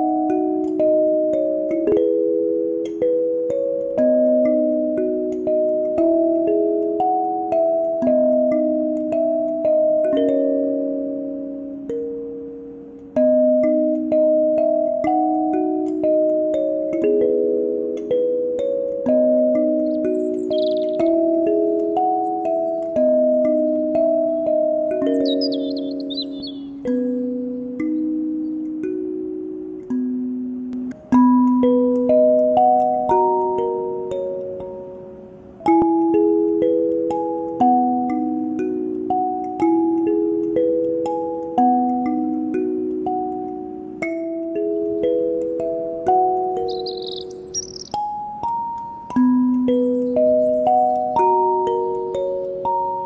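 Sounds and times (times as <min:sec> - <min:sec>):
kalimba melody: 0:00.0 - 0:53.0.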